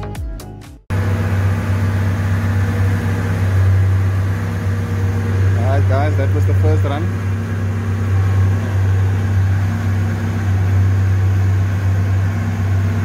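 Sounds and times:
dance music: 0:00.0 - 0:00.8
car engine droning on a dyno: 0:00.9 - 0:13.0.

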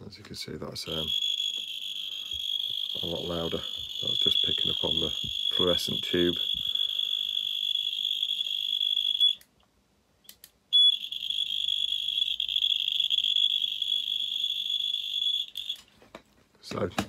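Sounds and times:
buzzer high-pitched tone: 0:01.0 - 0:09.4, 0:10.8 - 0:15.8.

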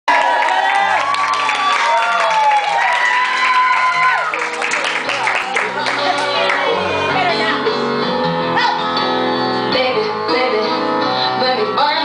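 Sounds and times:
group cheering with whoops: 0:00.1 - 0:06.2.

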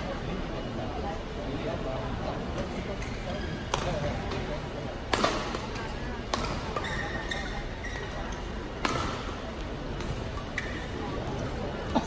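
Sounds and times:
murmur of voices: 0:00.0 - 0:12.0
rackets striking shuttlecock: 0:03.7 - 0:04.4, 0:05.1 - 0:07.0, 0:08.8 - 0:09.4.

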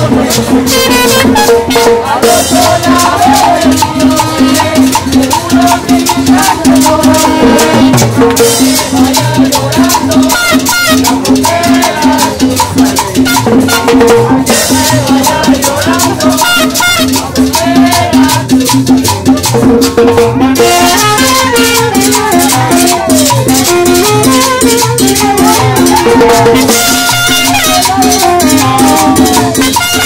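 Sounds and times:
live band playing: 0:00.0 - 0:30.0.

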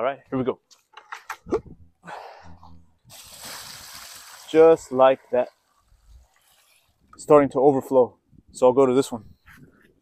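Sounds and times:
liquid splashing onto soil: 0:03.1 - 0:05.6.

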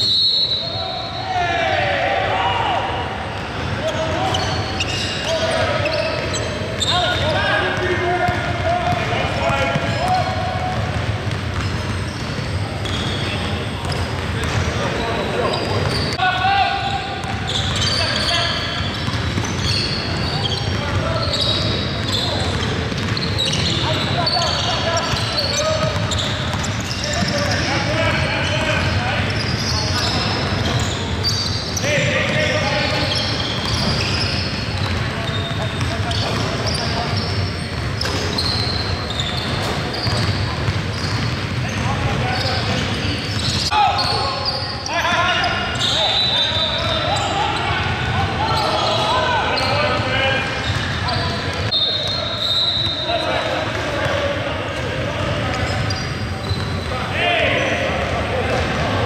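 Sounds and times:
players calling out: 0:00.0 - 0:59.0
sneakers squeaking: 0:00.0 - 0:59.0.

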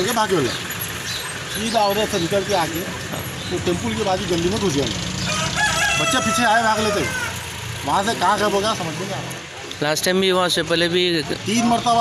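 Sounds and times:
rooster crowing: 0:05.2 - 0:07.6.

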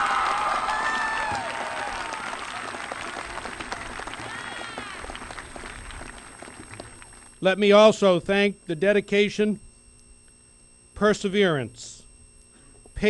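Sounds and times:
crowd cheering: 0:00.0 - 0:07.2
crowd applauding: 0:00.0 - 0:07.3.

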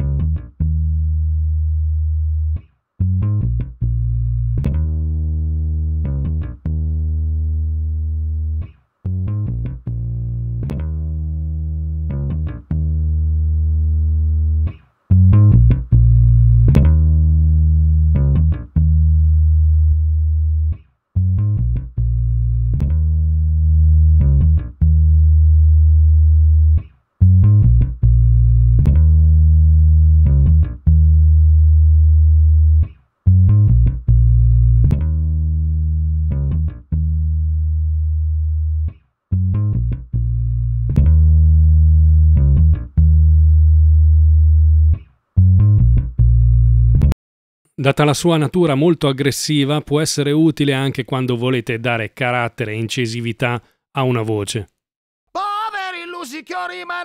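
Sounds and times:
bass guitar loop: 0:00.0 - 0:47.2.

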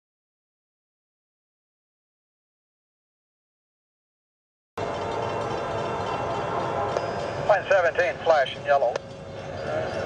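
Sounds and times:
approaching train drone: 0:04.8 - 0:10.0.

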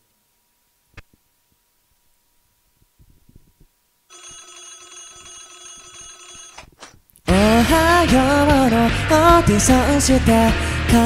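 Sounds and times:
bright ringing electronic tone: 0:04.1 - 0:06.7.

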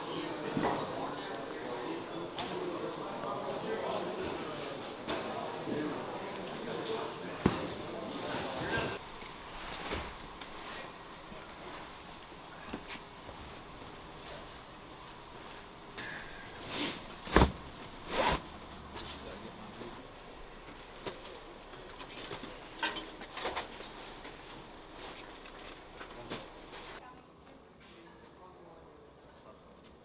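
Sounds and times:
bags thudding: 0:17.2 - 0:18.4.

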